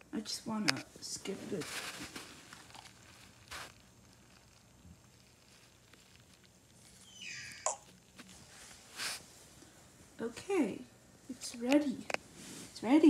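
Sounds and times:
rustling on a bedspread: 0.6s - 3.9s, 8.1s - 9.6s, 11.3s - 13.0s.

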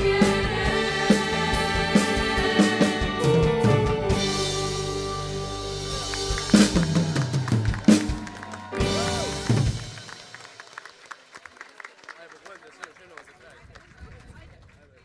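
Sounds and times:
drum and cymbal hits: 0.0s - 10.6s
live band playing: 0.0s - 10.8s
crowd voices: 2.6s - 10.6s
audience clapping: 5.8s - 15.0s.

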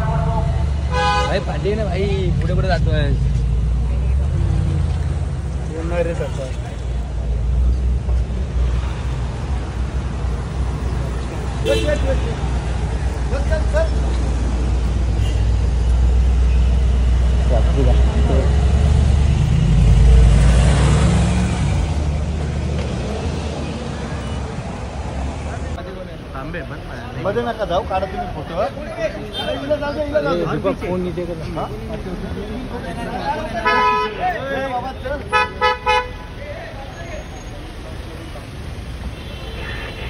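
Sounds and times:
cars driving past: 0.0s - 40.0s.

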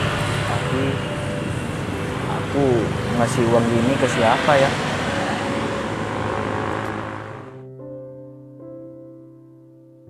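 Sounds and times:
vehicle passing with steady hum: 0.0s - 7.6s.

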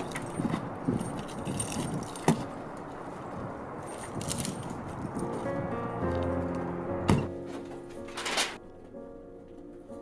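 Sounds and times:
car keys jangling: 0.0s - 2.6s, 3.8s - 5.5s.

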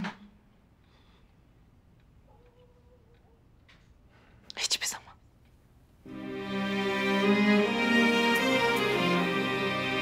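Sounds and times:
woman whispering: 4.4s - 5.3s.

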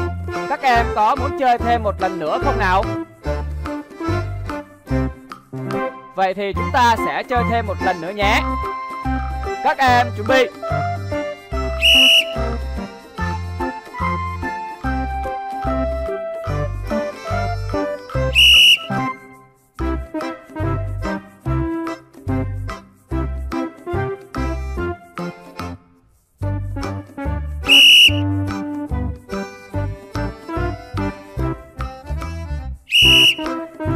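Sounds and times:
background music with steady beat: 0.0s - 33.9s
sports whistle blast: 11.8s - 12.6s, 18.3s - 19.2s, 27.7s - 28.3s, 32.9s - 33.5s.

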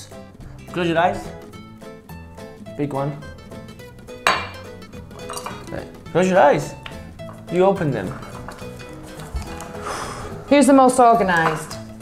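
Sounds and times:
soft background music: 0.0s - 12.0s
glass bowl clinking and rattling: 4.2s - 5.8s, 7.2s - 9.4s.

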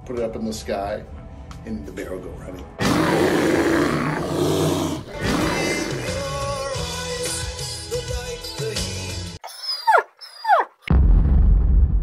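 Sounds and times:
bear roaring: 2.8s - 6.2s.

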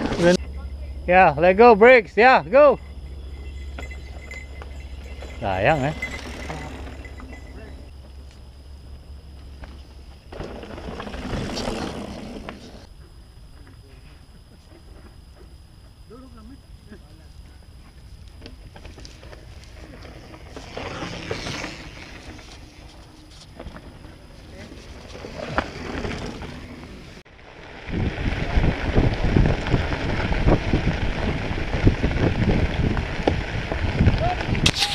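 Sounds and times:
bike tyres on gravel: 0.0s - 12.9s, 17.0s - 34.9s
knobby tyres crunching on gravel: 2.5s - 12.9s, 17.4s - 34.9s
wind on microphone: 27.4s - 34.9s.

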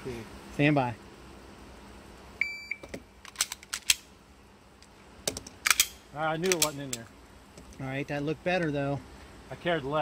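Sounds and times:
shot timer beep: 2.4s - 2.8s
pistol handling clicks and clatter: 2.9s - 4.1s, 4.8s - 7.8s.

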